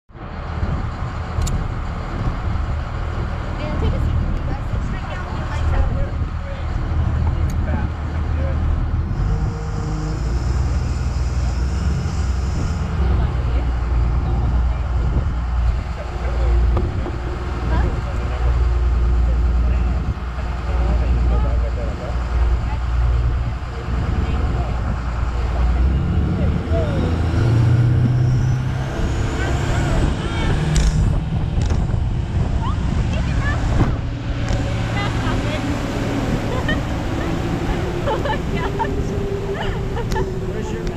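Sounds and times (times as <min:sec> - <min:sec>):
boat engine rumbling: 0:00.0 - 0:40.9
water noise: 0:00.1 - 0:40.9
wind on microphone: 0:00.1 - 0:40.9.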